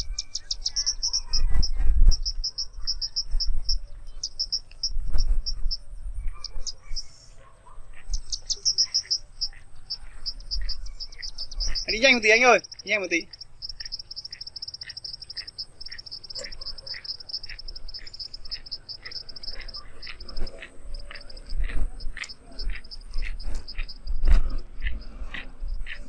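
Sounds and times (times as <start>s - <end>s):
insects trilling: 0.0s - 7.2s, 7.9s - 26.0s.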